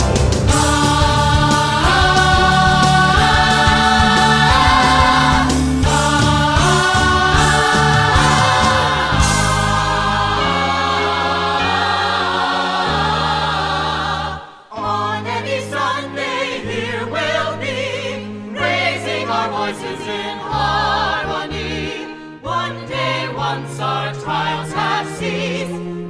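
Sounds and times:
gospel accompaniment: 0.0 - 26.0
choir singing: 0.4 - 26.0.

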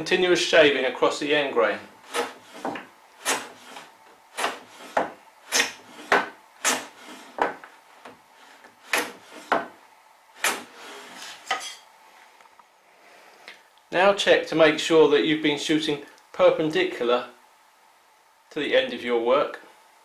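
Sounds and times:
hand plane cutting strokes: 2.0 - 9.7, 10.4 - 11.5.

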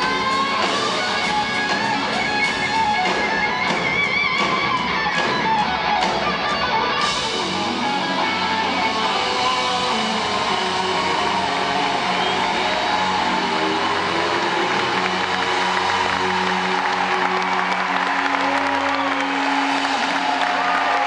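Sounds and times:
audience applause and cheering: 0.0 - 21.0
rock band chord ringing out: 0.0 - 21.0.

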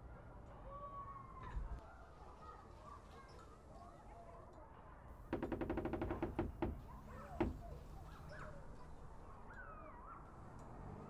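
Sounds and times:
rapid knocking: 5.3 - 8.0.

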